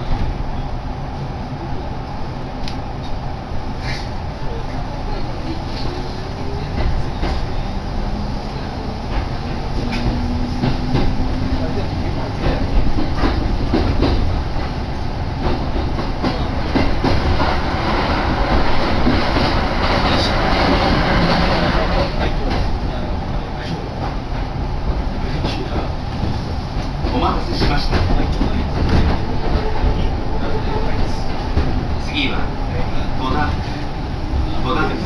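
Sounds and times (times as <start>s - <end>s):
electric train interior noise: 0.0s - 35.0s
passing train rushing: 0.0s - 35.0s.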